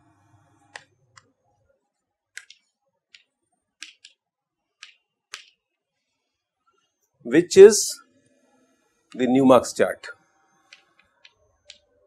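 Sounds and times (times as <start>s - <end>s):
chalk tapping on blackboard: 2.4s - 4.2s, 4.8s - 5.6s.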